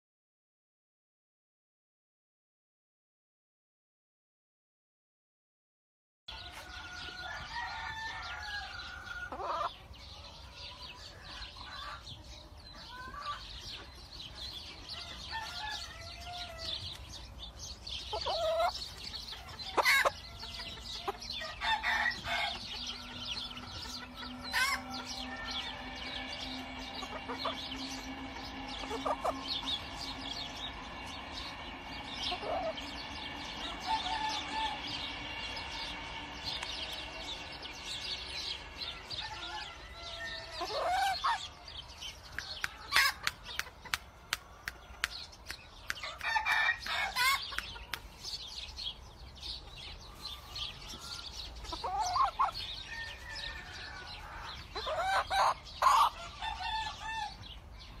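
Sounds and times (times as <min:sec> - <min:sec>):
rooster crowing: 0:06.3 - 0:09.7, 0:14.9 - 0:16.9, 0:19.5 - 0:41.5, 0:46.0 - 0:47.5, 0:51.8 - 0:57.5.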